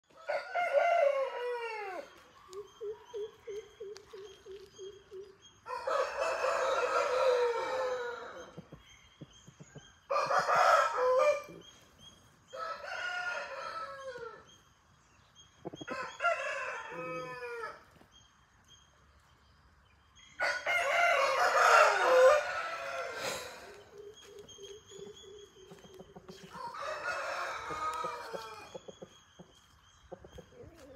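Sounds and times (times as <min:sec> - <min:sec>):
roosters crowing: 0:00.0 - 0:02.2, 0:05.6 - 0:08.6, 0:10.1 - 0:11.7, 0:12.5 - 0:14.4, 0:15.8 - 0:17.8, 0:20.4 - 0:24.0, 0:26.4 - 0:28.9.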